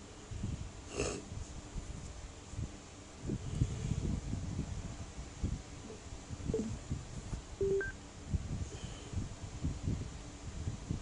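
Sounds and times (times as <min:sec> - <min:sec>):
electronic device beeps: 0:07.6 - 0:08.0.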